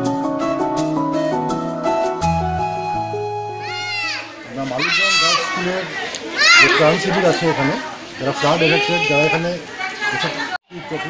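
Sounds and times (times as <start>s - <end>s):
keyboard background music: 0.0s - 4.1s
lower voices talking: 3.6s - 11.0s.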